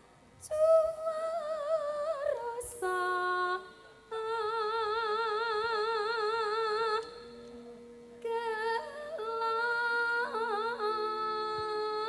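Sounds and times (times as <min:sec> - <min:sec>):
woman singing with vibrato: 0:00.4 - 0:07.4, 0:08.2 - 0:12.0.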